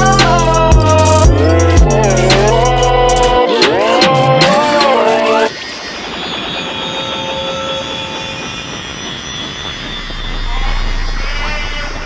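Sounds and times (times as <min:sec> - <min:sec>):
deep bass rumble: 0:00.0 - 0:03.4, 0:08.3 - 0:12.0.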